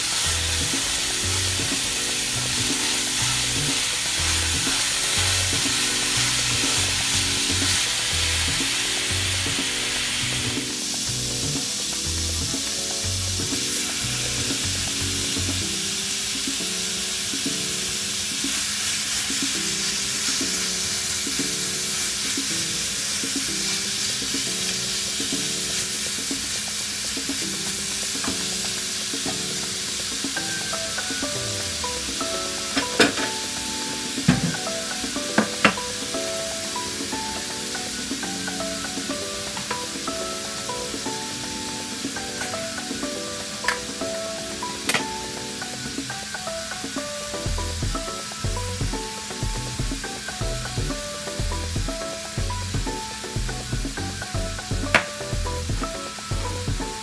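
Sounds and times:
background music with bass: 0.0s - 18.8s, 19.4s - 57.0s
meat sizzling in a skillet: 0.0s - 57.0s.

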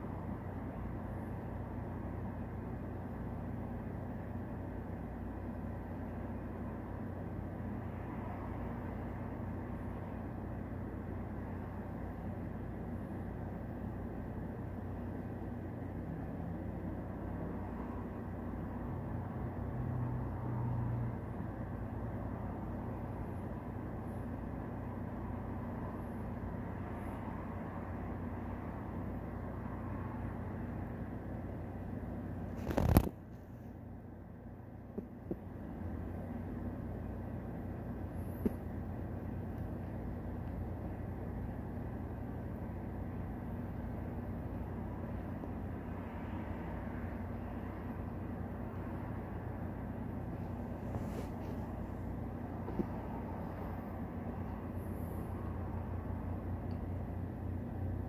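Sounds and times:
low background hum and rumble: 0.0s - 58.0s.

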